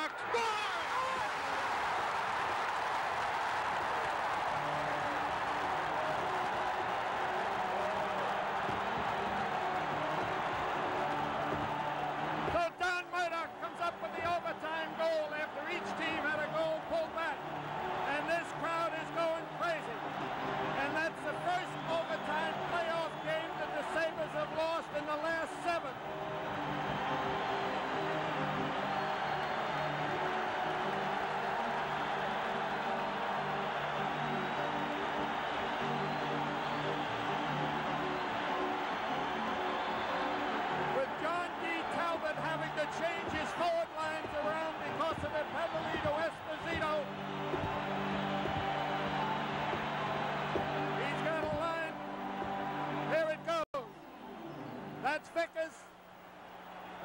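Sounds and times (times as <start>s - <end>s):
crowd cheering and roaring: 0.0s - 53.7s, 55.0s - 57.0s
music playing: 0.0s - 55.4s.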